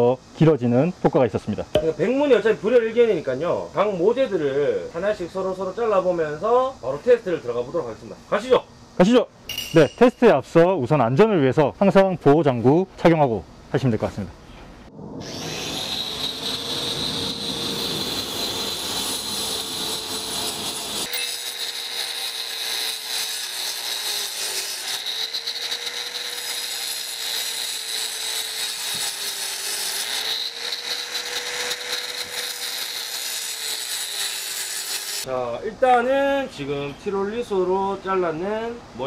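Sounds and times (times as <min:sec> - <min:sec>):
angle grinder cutting brick: 0:15.2 - 0:35.3.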